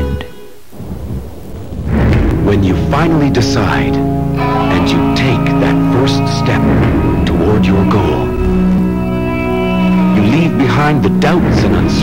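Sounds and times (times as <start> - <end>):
music: 0.0 - 0.7, 2.0 - 12.0
low thunder-like rumbling: 0.6 - 12.0.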